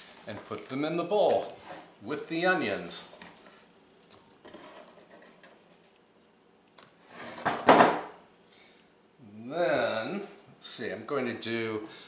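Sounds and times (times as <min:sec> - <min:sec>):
faint handling noise: 0:00.0 - 0:01.9.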